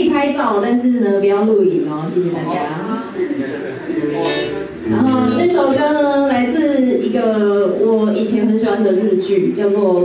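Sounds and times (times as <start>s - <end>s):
person speaking: 2.3s - 6.4s
electric guitar notes: 4.0s - 6.0s.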